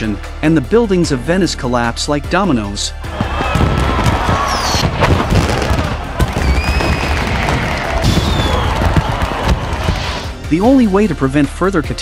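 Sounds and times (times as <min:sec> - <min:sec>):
crowd voices: 0:03.0 - 0:10.5
fireworks bangs and crackles: 0:03.1 - 0:10.4
whistling firework shells: 0:03.4 - 0:10.4.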